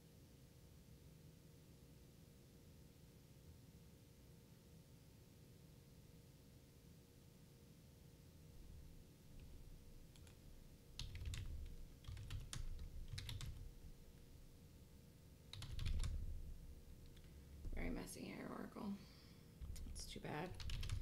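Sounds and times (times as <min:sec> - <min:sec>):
computer keyboard typing: 0:09.3 - 0:14.3, 0:15.5 - 0:17.8, 0:19.6 - 0:21.0.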